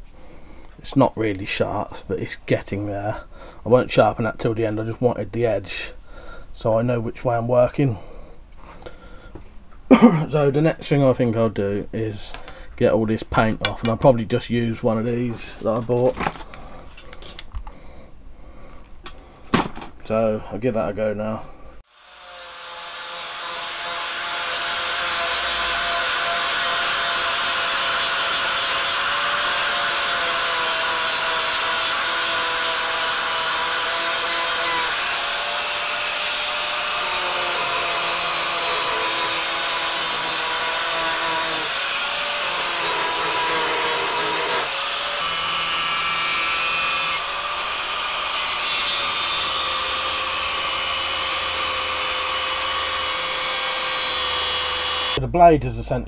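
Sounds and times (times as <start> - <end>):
angle grinder sanding metal: 21.9 - 55.2.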